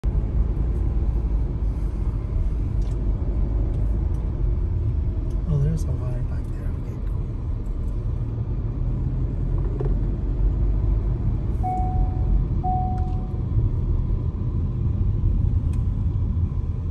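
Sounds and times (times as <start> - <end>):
car engine and tyres rumbling: 0.0 - 16.9
short faint beeps: 11.6 - 13.4.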